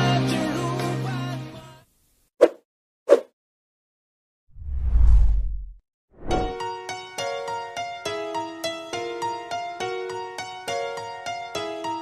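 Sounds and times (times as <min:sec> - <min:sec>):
whoosh with low rumble: 0:04.6 - 0:06.5.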